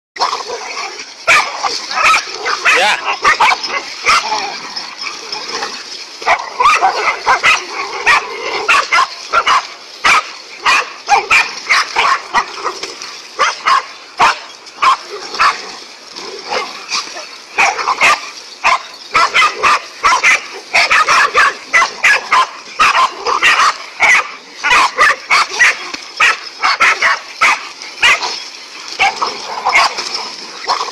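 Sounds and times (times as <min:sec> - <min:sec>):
dogs barking: 0:00.2 - 0:30.9.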